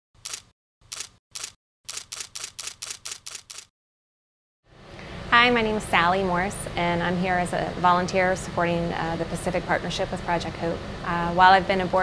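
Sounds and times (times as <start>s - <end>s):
camera shutter clicks: 0.2s - 3.7s.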